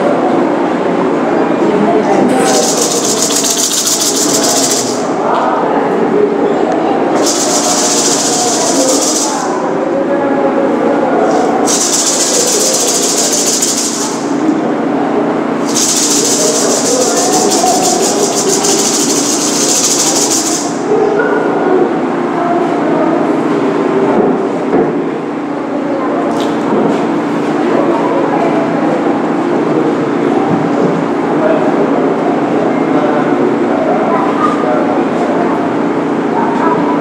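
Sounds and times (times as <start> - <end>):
hand rattle shaking: 2.4 - 5.1, 7.2 - 9.5, 11.7 - 14.4, 15.6 - 20.8.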